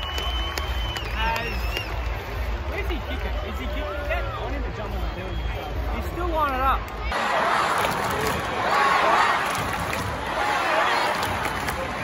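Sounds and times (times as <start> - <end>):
crowd voices talking: 0.0 - 12.0.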